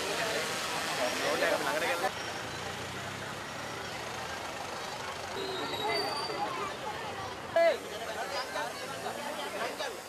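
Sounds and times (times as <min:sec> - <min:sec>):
murmur of crowd: 0:00.0 - 0:10.0.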